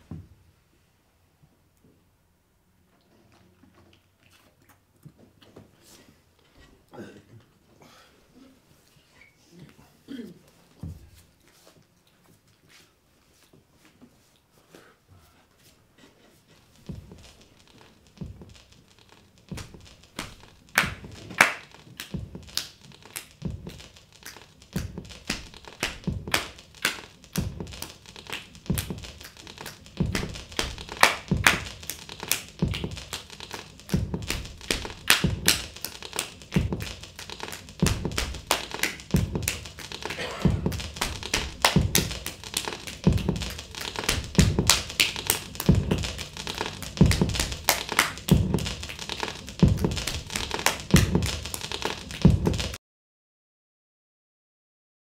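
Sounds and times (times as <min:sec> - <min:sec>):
sharp clicking taps: 0:16.9 - 0:52.8
low drum beat: 0:30.0 - 0:31.9, 0:32.5 - 0:33.1, 0:33.9 - 0:35.8, 0:36.4 - 0:37.1, 0:37.7 - 0:52.8.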